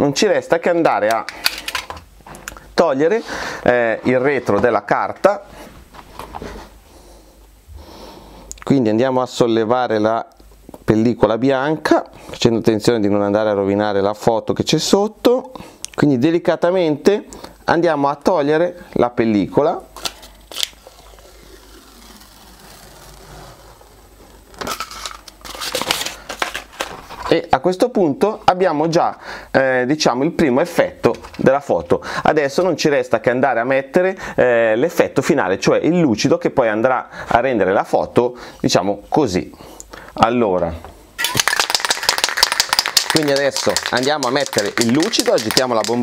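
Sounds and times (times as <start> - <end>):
spray can mixing ball rattling: 20.6 - 23.2, 41.2 - 46.0
paper crinkling and rustling: 24.5 - 27.4, 41.4 - 46.0.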